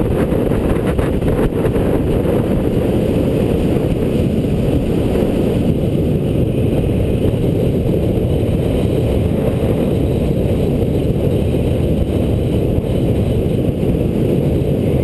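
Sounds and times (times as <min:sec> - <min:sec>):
tyres humming on asphalt: 0:00.0 - 0:15.0
wind buffeting microphone: 0:00.0 - 0:15.0.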